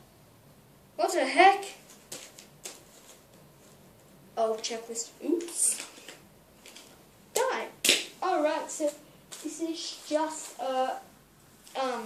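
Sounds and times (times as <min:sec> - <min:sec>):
trading cards rustling and clicking: 0:01.8 - 0:03.9, 0:05.4 - 0:07.5.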